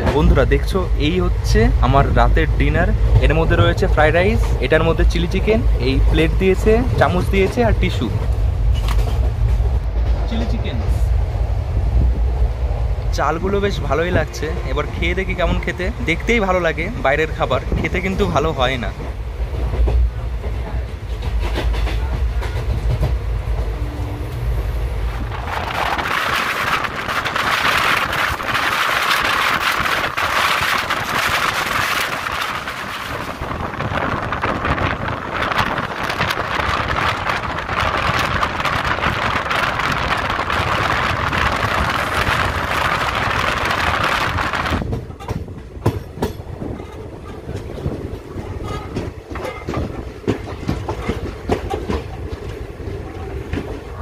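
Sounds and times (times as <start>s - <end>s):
train wheels rushing on rails: 0.0s - 54.0s
wheels clacking over rail joints: 2.9s - 10.5s, 19.0s - 23.8s, 25.1s - 54.0s.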